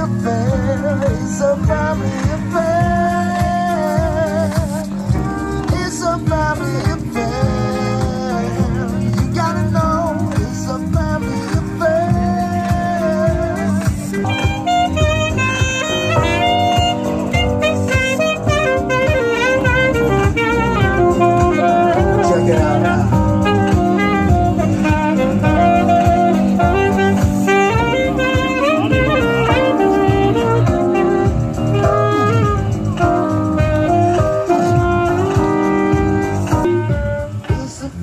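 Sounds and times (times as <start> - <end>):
electric keyboard accompaniment: 0.0 - 38.0
saxophone playing jazzy melody: 0.0 - 38.0.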